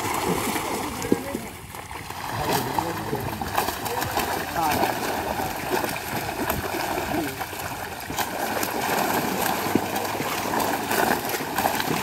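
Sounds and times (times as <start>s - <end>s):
fish thrashing and splashing in water: 0.0s - 12.0s
voices: 2.3s - 5.8s.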